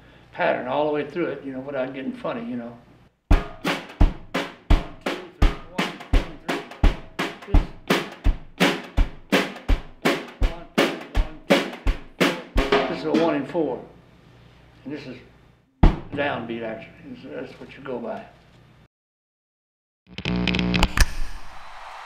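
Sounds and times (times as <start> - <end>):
drum kit played with brushes: 3.3 - 13.8.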